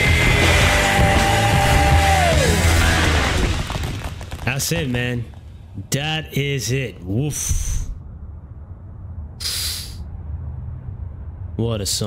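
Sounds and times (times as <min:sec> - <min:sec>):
man blowing sharp hissing breath: 0:09.4 - 0:10.1.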